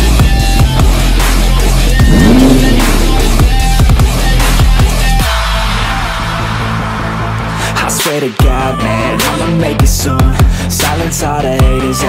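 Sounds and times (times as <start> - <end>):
hip-hop music with sliding bass: 0.0 - 12.0
rising sweep: 2.0 - 4.0.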